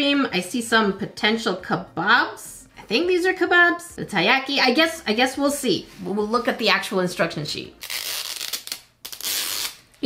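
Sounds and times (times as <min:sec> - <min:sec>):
wrapper tearing: 0:07.8 - 0:10.0.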